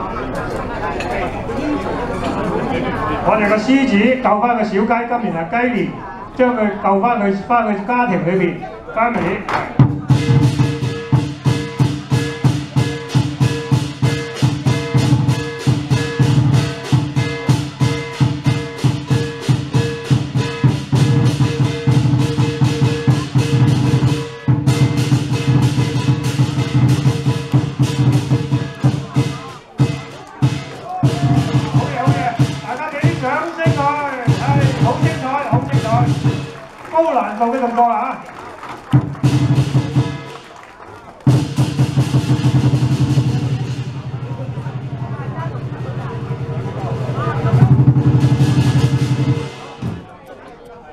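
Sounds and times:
man's voice: 3.1s - 10.3s, 30.8s - 38.3s
large drum beaten fast: 9.7s - 37.8s, 38.9s - 40.4s, 41.2s - 50.1s.

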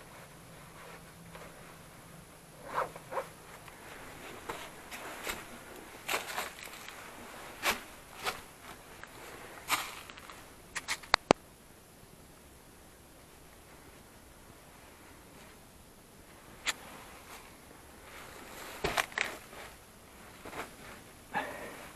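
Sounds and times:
footsteps in dry leaves: 4.0s - 11.0s
sharp clicks: 10.7s - 11.4s.

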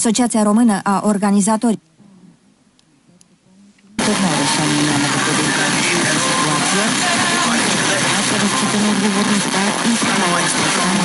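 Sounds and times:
faint radio station: 0.0s - 11.0s
radio static hiss: 2.2s - 11.0s.

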